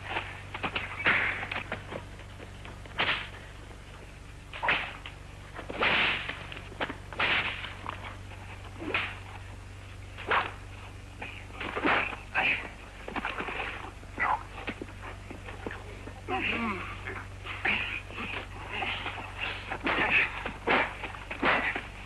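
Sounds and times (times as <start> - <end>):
scuffling: 0.0 - 22.0
punch smacks: 4.6 - 5.0, 5.7 - 6.4, 8.8 - 9.2.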